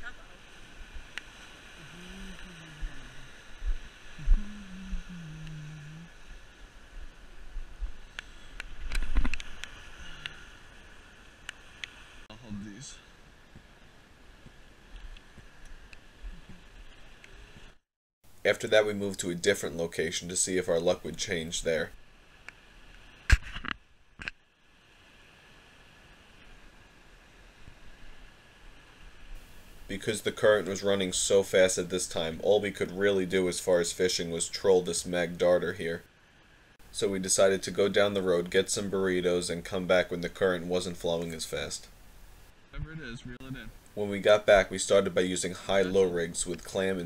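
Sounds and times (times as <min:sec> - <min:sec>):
low hum: 0:00.0 - 0:17.8
faint steady hiss: 0:00.0 - 0:47.0.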